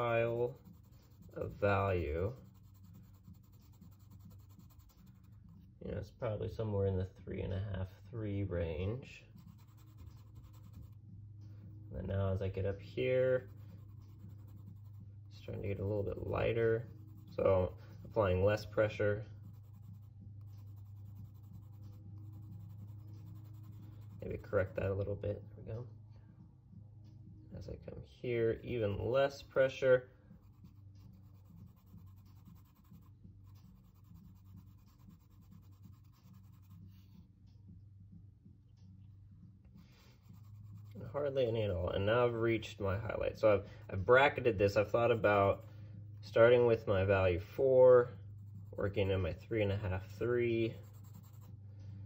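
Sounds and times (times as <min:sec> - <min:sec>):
pencil scratching on paper: 0:00.0 - 0:05.6, 0:09.3 - 0:11.0, 0:13.1 - 0:24.8, 0:30.4 - 0:37.2, 0:39.8 - 0:42.8, 0:48.2 - 0:51.5.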